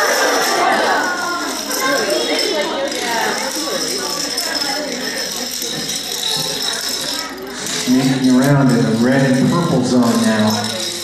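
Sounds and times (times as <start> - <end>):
children chattering: 0.0 - 11.0
dominoes toppling: 0.0 - 11.0.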